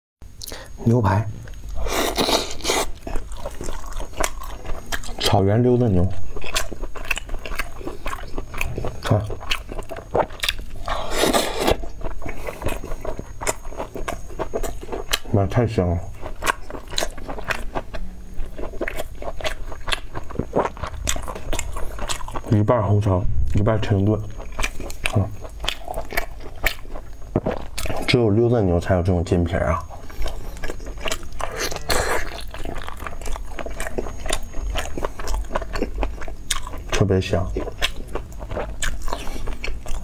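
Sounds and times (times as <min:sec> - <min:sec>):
chewing food: 0:01.4 - 0:22.8, 0:23.5 - 0:28.2, 0:29.6 - 0:40.0.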